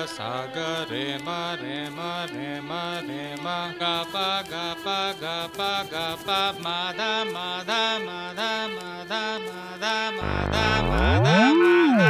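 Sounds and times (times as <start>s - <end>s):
chant-like singing over a beat: 0.0s - 12.0s.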